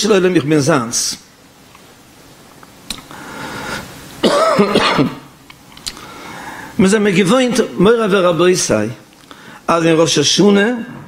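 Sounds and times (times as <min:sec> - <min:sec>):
man clearing his throat: 0:04.2 - 0:05.3.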